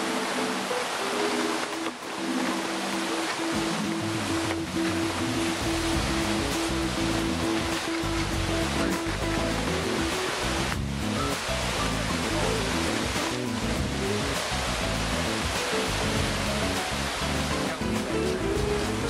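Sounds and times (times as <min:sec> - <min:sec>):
instrumental music with held notes: 0:00.0 - 0:19.0
river rushing through rapids: 0:00.0 - 0:19.0.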